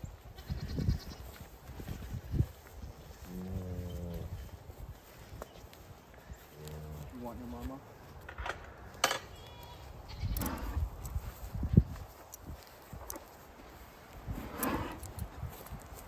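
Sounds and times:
cow hooves on dry ground: 0:00.0 - 0:16.0
footsteps on dry ground: 0:00.0 - 0:16.0.

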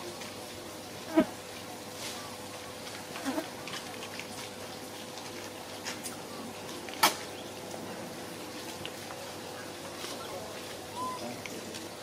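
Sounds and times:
faint insect buzz: 0:01.0 - 0:01.4, 0:03.1 - 0:03.6.

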